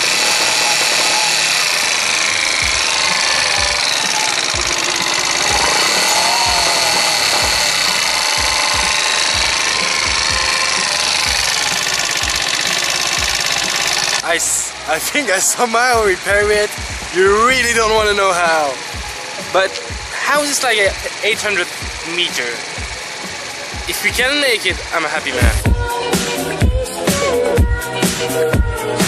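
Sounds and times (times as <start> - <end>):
moped engine whirring: 0.0 - 27.7.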